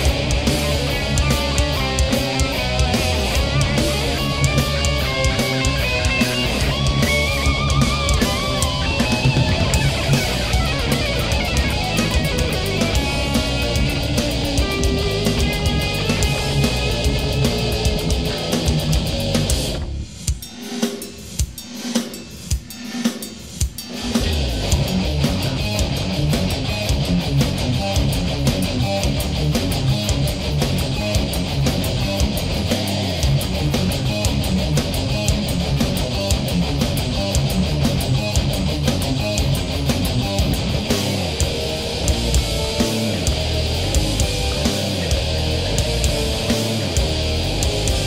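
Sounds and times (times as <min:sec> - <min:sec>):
bass guitar: 0:00.0 - 0:20.1, 0:24.0 - 0:48.0
distorted electric guitars: 0:00.0 - 0:48.0
drum kit: 0:00.0 - 0:48.0.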